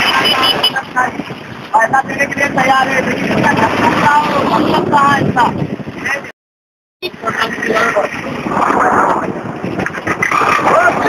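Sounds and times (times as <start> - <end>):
heavy vehicles passing: 0.0 - 6.3.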